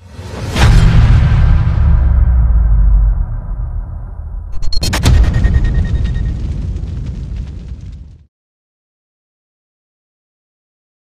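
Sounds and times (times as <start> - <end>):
deep cinematic boom: 0.6 - 8.2.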